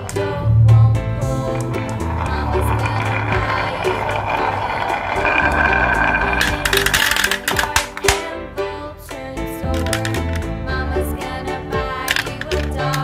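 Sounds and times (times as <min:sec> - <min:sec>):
background music: 0:00.0 - 0:13.0
marbles rolling on wooden track: 0:01.2 - 0:08.3, 0:09.7 - 0:10.6, 0:11.8 - 0:13.0
marbles clattering into plastic: 0:01.5 - 0:08.3, 0:09.7 - 0:10.5, 0:12.0 - 0:13.0.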